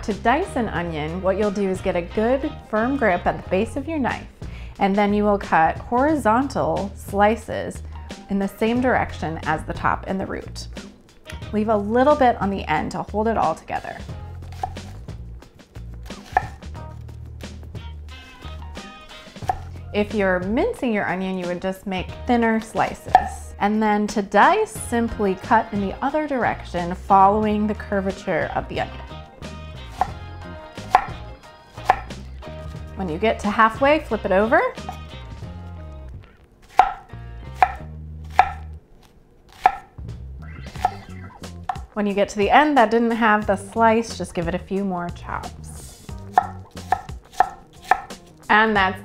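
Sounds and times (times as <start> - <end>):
knife slicing onion: 14.4 - 15.1, 16.1 - 16.7, 19.4 - 19.7, 29.8 - 30.2, 30.8 - 32.9, 36.6 - 40.0, 40.7 - 41.9, 45.8 - 48.4
knife tapping wooden board: 16.2 - 16.6, 30.8 - 31.2, 31.8 - 32.2, 36.7 - 38.7, 39.6 - 39.9, 41.6 - 41.9, 46.3 - 48.2.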